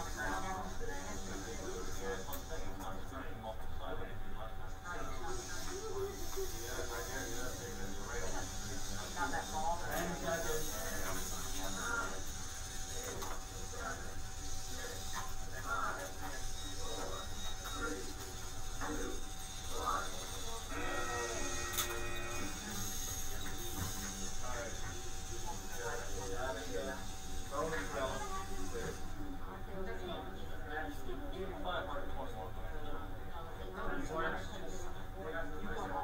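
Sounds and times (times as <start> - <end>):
steady whine: 0.0 - 29.8
people talking in a room: 0.0 - 36.0
steady low hum: 0.0 - 36.0.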